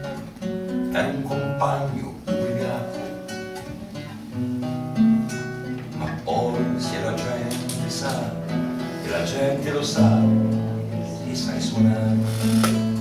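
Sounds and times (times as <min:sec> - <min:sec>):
acoustic guitar strumming: 0:00.0 - 0:13.0.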